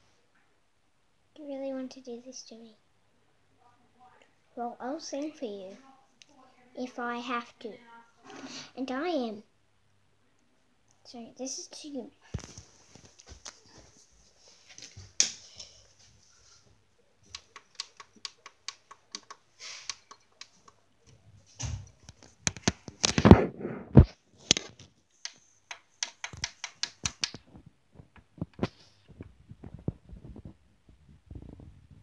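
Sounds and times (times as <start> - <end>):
sharp clicks and taps: 17.3 - 20.8, 24.0 - 28.7.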